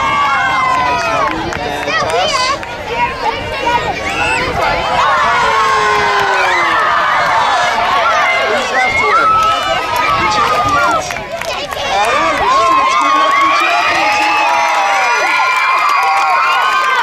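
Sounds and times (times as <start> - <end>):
children shouting and cheering: 0.0 - 17.0.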